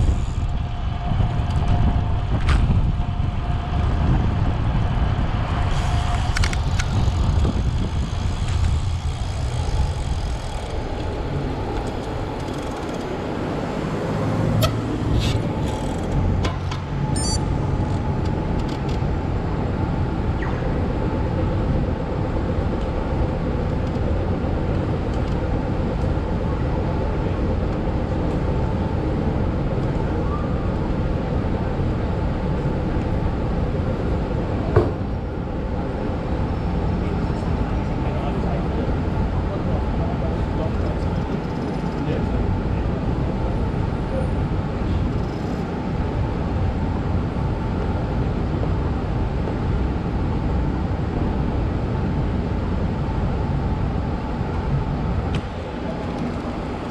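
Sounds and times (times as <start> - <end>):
city street traffic: 0.0 - 56.9.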